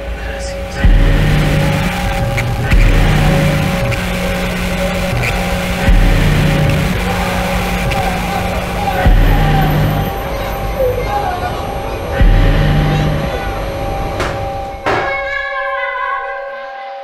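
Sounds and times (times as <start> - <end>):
low sustained drone: 0.0 - 14.9
deep booming hits: 0.8 - 10.3, 12.2 - 14.9.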